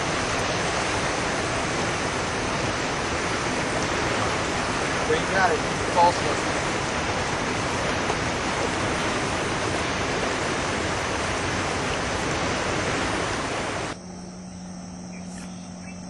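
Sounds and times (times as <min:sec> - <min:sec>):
river current rushing over rocks: 0:00.0 - 0:14.0.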